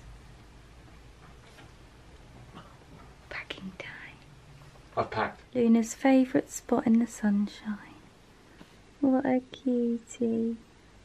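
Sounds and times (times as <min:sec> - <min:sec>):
person whispering: 0:03.3 - 0:04.2.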